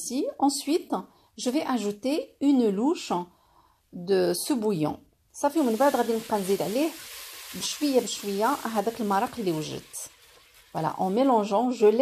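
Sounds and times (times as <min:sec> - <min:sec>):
woman speaking: 0:00.0 - 0:03.3, 0:03.9 - 0:07.0, 0:07.6 - 0:10.1, 0:10.8 - 0:12.0
rice sizzling in a pot: 0:05.4 - 0:12.0.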